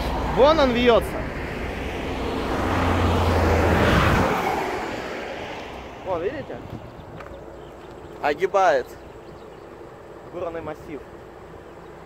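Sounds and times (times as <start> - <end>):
vehicle passing by: 0.0 - 8.4.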